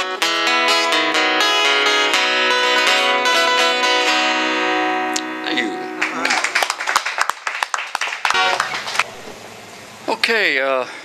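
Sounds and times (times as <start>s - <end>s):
room hum: 5.1s - 11.0s
audience applause: 6.0s - 9.3s.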